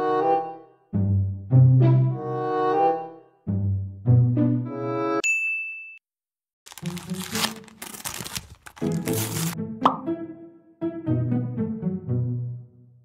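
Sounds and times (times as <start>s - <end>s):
bright ding: 5.2s - 6.0s
rising plop sound effect: 9.8s - 10.1s.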